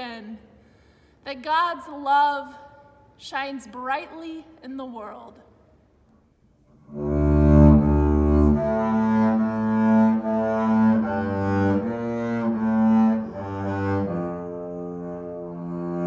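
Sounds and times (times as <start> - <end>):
bowed double bass melody: 6.8 - 16.0.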